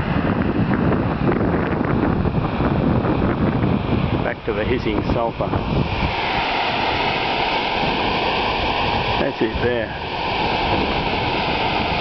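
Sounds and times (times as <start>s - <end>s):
volcanic vent hissing: 0.0s - 12.0s.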